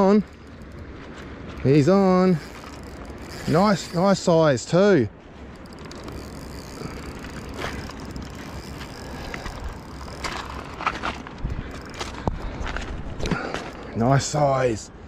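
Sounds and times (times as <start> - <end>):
reel drag working: 0.0 - 14.3
spinning reel winding: 2.1 - 4.3, 5.6 - 10.8.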